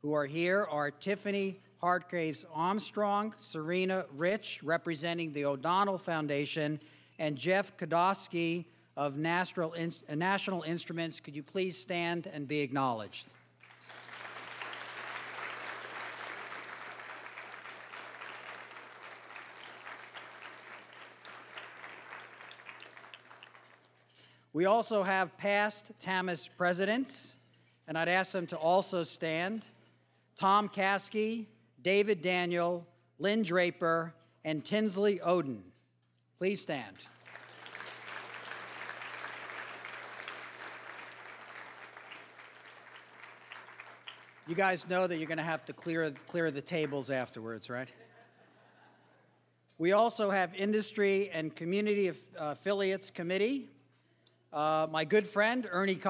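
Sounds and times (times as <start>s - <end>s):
audience applauding: 13.6s - 24.0s, 37.2s - 45.1s.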